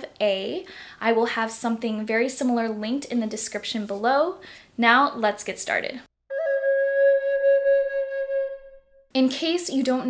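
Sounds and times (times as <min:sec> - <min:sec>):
flute long note: 0:06.3 - 0:09.0.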